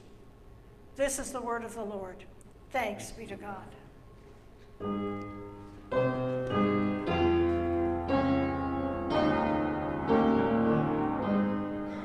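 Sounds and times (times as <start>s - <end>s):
piano playing slow chords: 4.8s - 12.0s.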